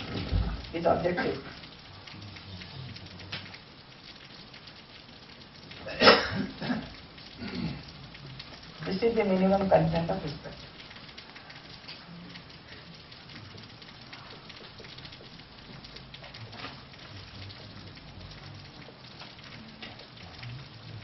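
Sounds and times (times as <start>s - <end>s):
steady background hiss: 0.0s - 21.0s.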